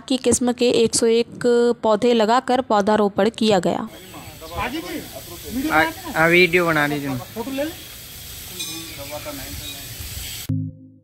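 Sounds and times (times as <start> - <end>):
steady hiss: 3.9 - 10.5.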